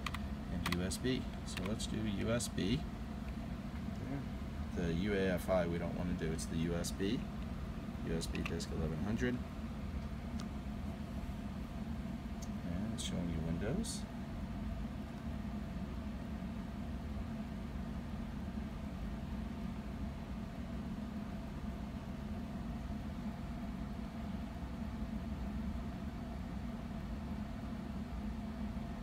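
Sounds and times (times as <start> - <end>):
computer cooling fans humming: 0.0 - 29.0.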